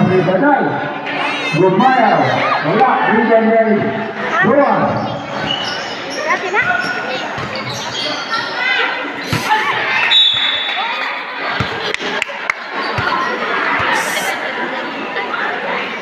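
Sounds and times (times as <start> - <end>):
crowd voices echoing: 0.0 - 16.0
sneakers squeaking: 4.4 - 12.0, 12.7 - 14.2
basketball bouncing on court: 6.5 - 8.0, 11.5 - 12.0, 12.8 - 14.0.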